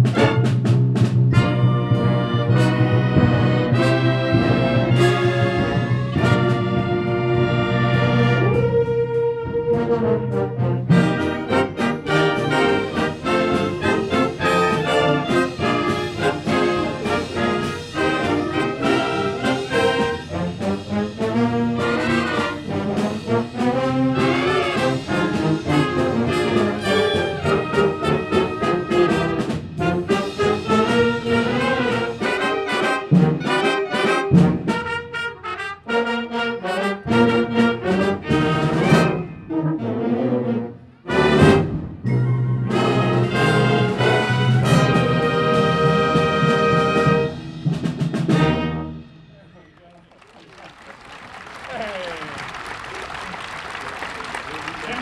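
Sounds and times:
concert band playing: 0.0 - 55.0.

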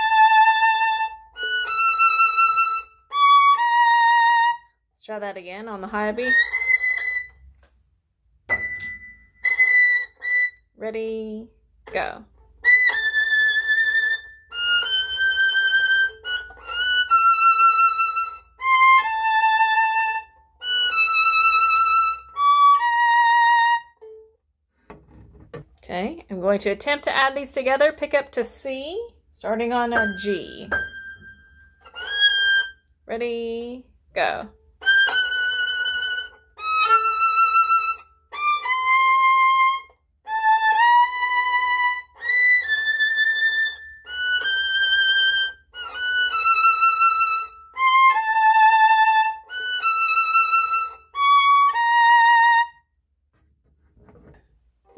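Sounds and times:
solo violin playing: 0.0 - 4.8, 5.8 - 7.5, 9.0 - 10.7, 11.9 - 24.3, 29.6 - 32.8, 34.2 - 52.9.

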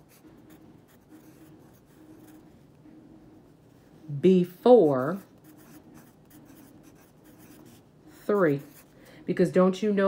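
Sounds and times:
pencil scratching on paper: 0.0 - 2.6, 4.8 - 8.9.

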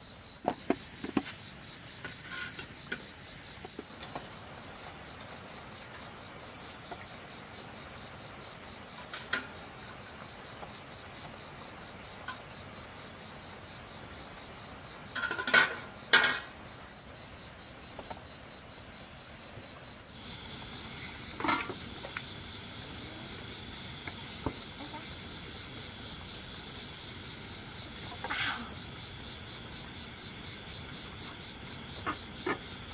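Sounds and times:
crickets chirring: 0.0 - 32.9
higher insect trill: 0.0 - 32.9
kitchenware knocks and clatters: 15.1 - 16.6.

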